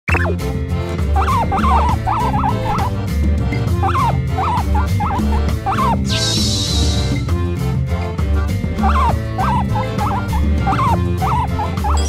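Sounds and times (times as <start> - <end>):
background music with low beat: 0.2 - 12.0
guinea pig squeaks: 1.2 - 2.9, 3.8 - 6.0, 8.8 - 12.0.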